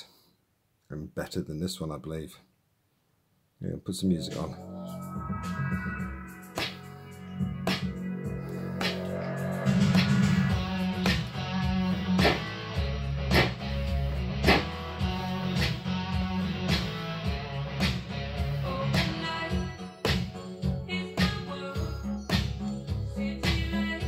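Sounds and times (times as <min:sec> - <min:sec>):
song with bass and guitar: 0:04.1 - 0:24.0
synthesized handclaps: 0:06.5 - 0:06.9, 0:07.6 - 0:08.0, 0:12.1 - 0:12.6, 0:14.4 - 0:14.7, 0:16.7 - 0:17.0.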